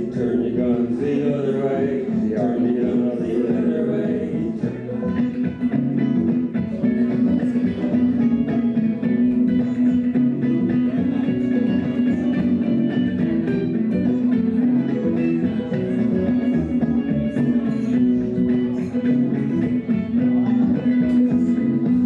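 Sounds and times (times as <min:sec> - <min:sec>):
guitar plucked notes: 0:00.0 - 0:22.0.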